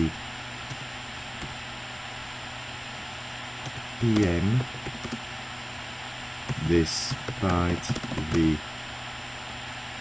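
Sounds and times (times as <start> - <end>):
faint low hum: 0.0 - 10.0
keyboard keystroke: 3.7 - 5.2, 6.5 - 8.5.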